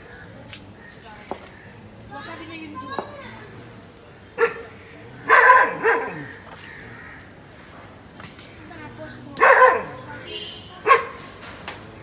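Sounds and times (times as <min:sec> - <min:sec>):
dog barking: 0:04.4 - 0:06.4, 0:09.4 - 0:10.2, 0:10.8 - 0:11.3.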